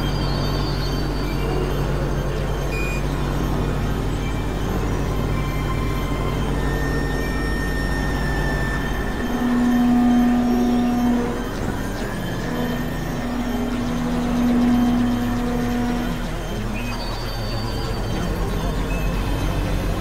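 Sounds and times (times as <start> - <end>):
electronic drone music: 0.0 - 20.0
low pulsing buzz: 0.0 - 20.0
low-middle synth tone: 0.0 - 20.0.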